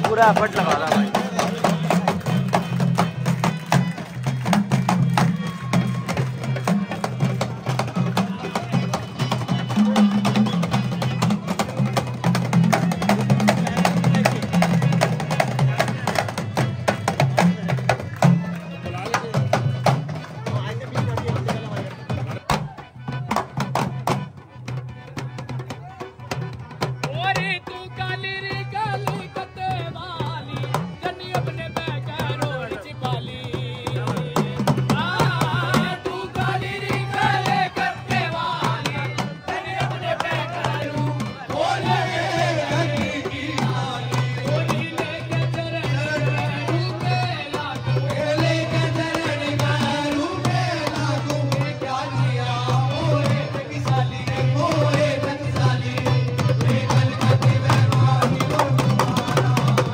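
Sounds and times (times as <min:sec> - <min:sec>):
dholak fast rhythm: 0:00.0 - 0:59.9
harmonium: 0:00.0 - 0:59.9
small hand drums: 0:00.0 - 0:59.9.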